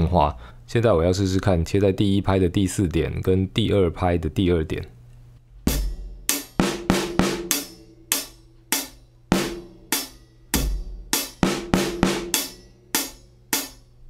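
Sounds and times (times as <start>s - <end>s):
bass drum thumping: 5.5s - 7.8s, 9.3s - 9.9s, 10.6s - 12.4s
hi-hat keeping time: 5.6s - 14.0s
damped snare drum hits: 5.7s - 13.8s.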